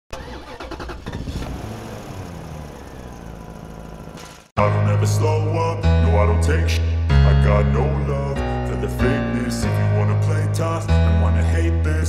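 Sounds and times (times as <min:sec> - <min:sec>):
engine starting and running: 0:00.1 - 0:04.6.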